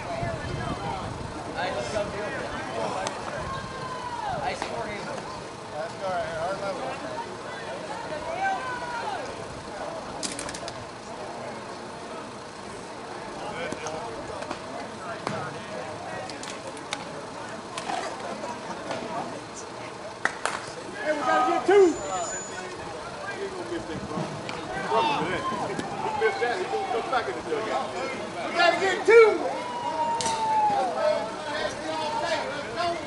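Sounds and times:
people talking and calling out: 0.0 - 33.0.

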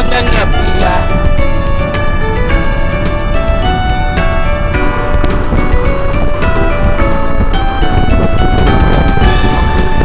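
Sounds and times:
melody of held notes: 0.0 - 10.0
steady low rumble: 0.0 - 10.0.

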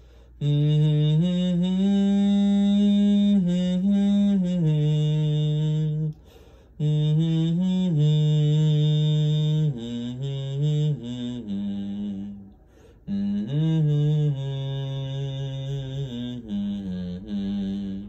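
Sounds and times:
man humming a slow melody: 0.0 - 18.0.

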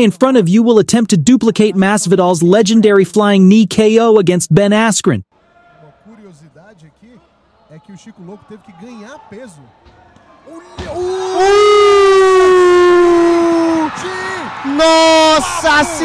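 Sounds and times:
thump: 10.8 - 11.0
person yelling excitedly: 11.0 - 16.0.

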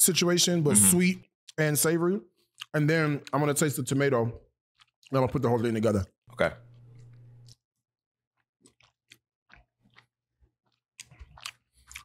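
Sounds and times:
chewing close to microphone: 4.8 - 5.6, 8.4 - 12.0.

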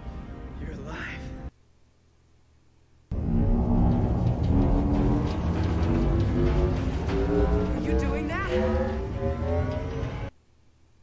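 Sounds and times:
deep low rumble: 3.1 - 10.3
dramatic score sustained tones: 3.1 - 10.3.

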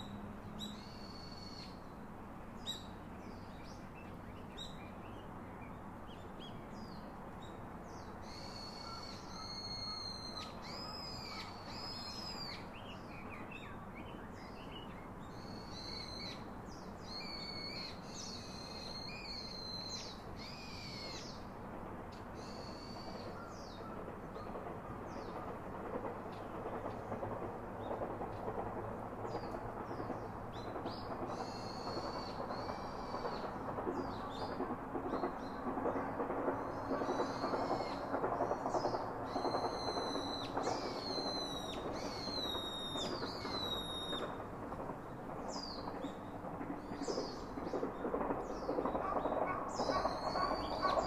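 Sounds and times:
steady rushing noise: 21.2 - 51.0.

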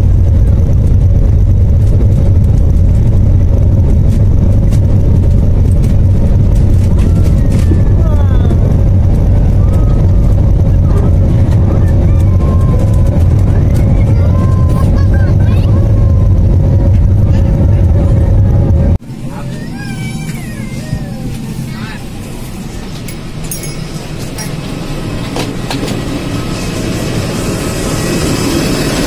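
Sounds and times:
jet engine rumble and whine: 0.0 - 29.0
passengers talking: 3.8 - 29.0.

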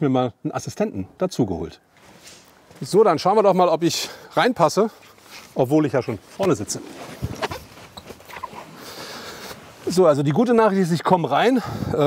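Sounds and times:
shuffling and handling noise: 1.9 - 3.2, 4.6 - 11.1.

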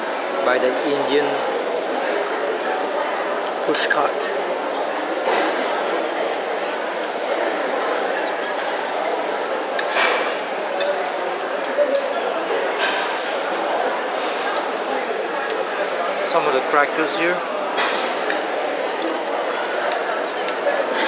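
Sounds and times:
crowd chatter: 0.0 - 21.0
cutlery clinking on plate: 9.4 - 12.1, 17.8 - 21.0.

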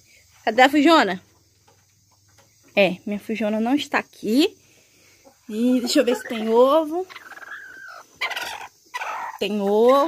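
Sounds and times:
hen squawking: 5.8 - 10.0.

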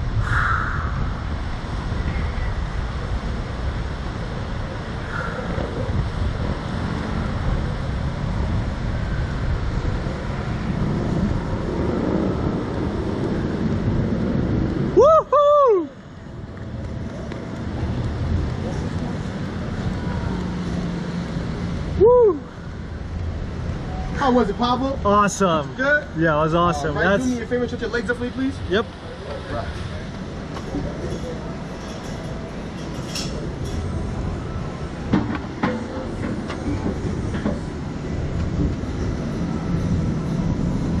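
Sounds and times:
low rumble: 0.0 - 24.1
air rushing on microphone: 0.0 - 24.4
person crying out: 15.0 - 15.9, 22.0 - 22.5.

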